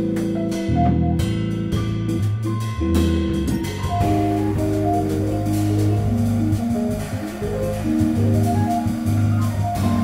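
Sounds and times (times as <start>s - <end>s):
drums and cymbals: 0.0s - 10.0s
electric piano notes: 0.0s - 10.0s
fretless bass notes: 0.0s - 10.0s.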